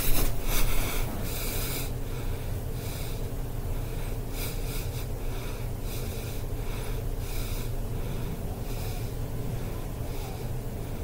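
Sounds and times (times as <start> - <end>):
low electrical hum: 0.0 - 11.0
person breathing out heavily: 0.0 - 11.0.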